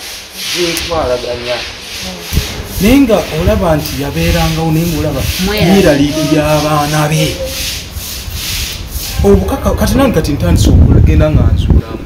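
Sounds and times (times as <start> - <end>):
scratchy rubbing noise: 0.0 - 10.2.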